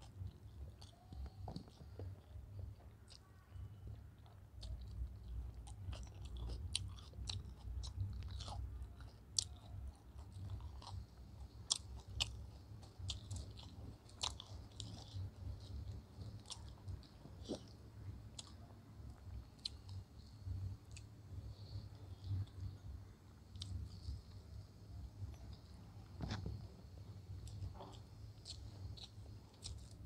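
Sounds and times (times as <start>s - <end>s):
close-up chewing: 0.0s - 30.0s
low steady hum: 0.0s - 30.0s.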